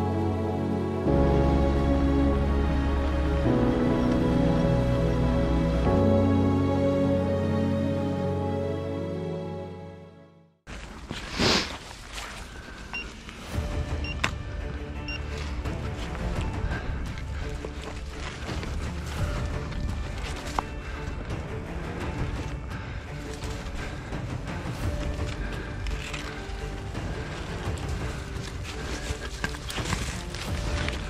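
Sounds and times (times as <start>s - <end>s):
footsteps in leaf litter: 10.7s - 13.5s, 26.6s - 31.0s
branches brushing: 10.7s - 13.6s, 24.7s - 31.0s
leaves and twigs rustling: 10.7s - 13.6s, 15.2s - 31.0s.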